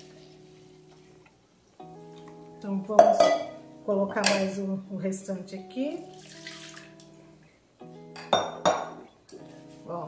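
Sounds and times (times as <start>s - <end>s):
soft guitar-like background music: 0.0s - 10.0s
glass bowl clinking down: 3.0s - 3.6s, 8.2s - 9.0s.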